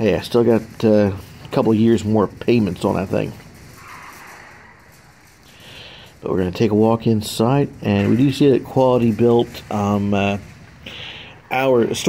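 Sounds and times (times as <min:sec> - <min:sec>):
room sound hiss: 0:00.0 - 0:12.0.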